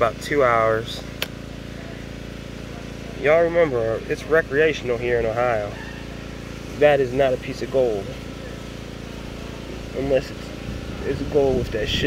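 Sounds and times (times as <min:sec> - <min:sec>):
small engine running: 0:00.0 - 0:12.0
sharp click: 0:01.2 - 0:01.4.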